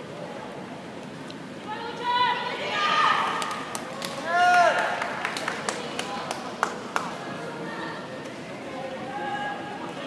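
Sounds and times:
sharp hand claps: 3.4 - 7.2.

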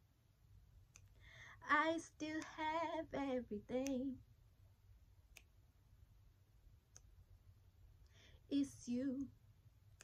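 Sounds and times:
faint clicks: 2.2 - 2.6.

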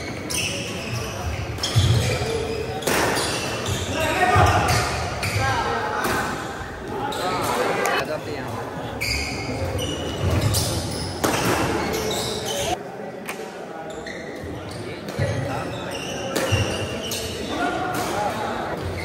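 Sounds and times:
rackets hitting shuttlecock: 2.8 - 3.6, 16.3 - 16.8.

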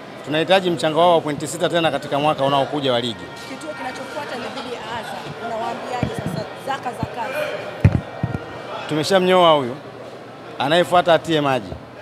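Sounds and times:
murmur of voices: 0.0 - 12.0
microphones thumping: 5.2 - 7.2, 7.8 - 8.5.

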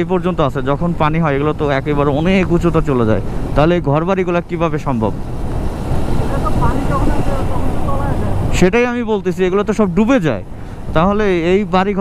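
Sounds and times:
motorcycle engine and road rumble: 0.0 - 12.0
wind rushing over microphone: 0.8 - 12.0.

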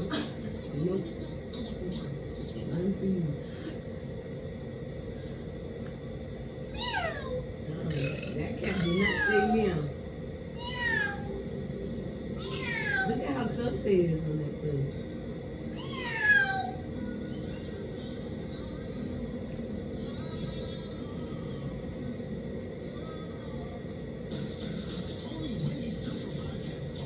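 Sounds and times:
cat meowing: 6.7 - 7.4, 10.6 - 11.3, 12.4 - 13.2, 15.7 - 16.8.

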